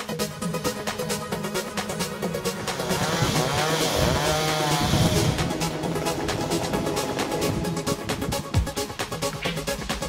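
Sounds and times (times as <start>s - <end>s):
background music: 0.0s - 10.0s
chainsaw revving: 0.4s - 10.0s.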